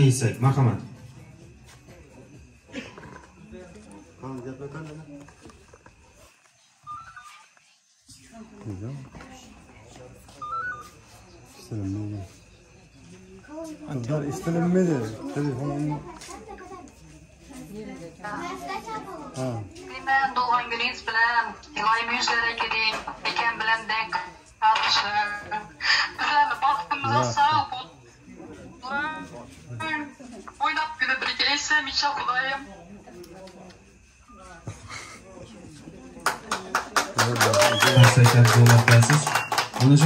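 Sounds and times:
group talking quietly: 0.0s - 40.0s.

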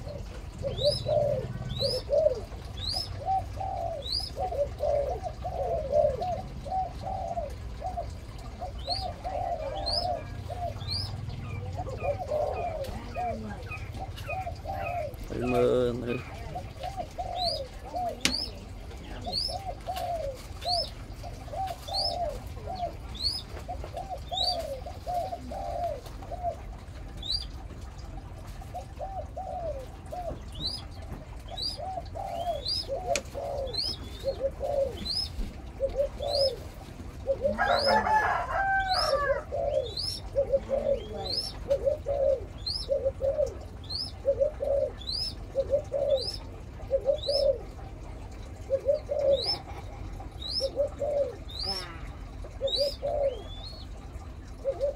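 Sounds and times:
bird cooing calls: 0.0s - 54.9s.

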